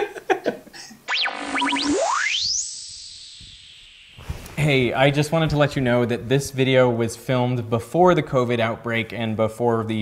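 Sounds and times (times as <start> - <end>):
laughter: 0.0 - 1.0
synthesized transition effect: 1.1 - 5.2.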